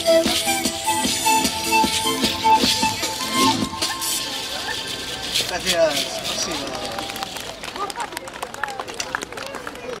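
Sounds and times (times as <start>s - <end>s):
street noise: 0.0s - 10.0s
people talking quietly: 3.4s - 10.0s.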